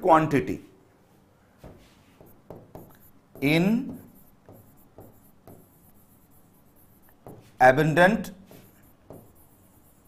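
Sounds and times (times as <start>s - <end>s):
pen tapping and scratching on screen: 1.6s - 7.6s, 8.5s - 10.0s.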